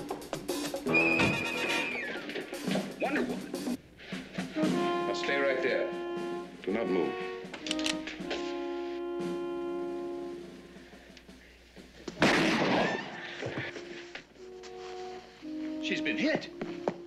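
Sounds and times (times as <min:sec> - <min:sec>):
dramatic orchestral music: 0:04.4 - 0:10.9, 0:13.2 - 0:17.0.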